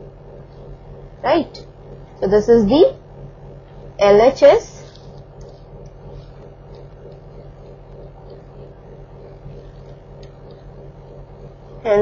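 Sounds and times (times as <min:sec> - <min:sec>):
low electrical hum: 0:00.0 - 0:12.0
faint ticks: 0:04.7 - 0:11.9.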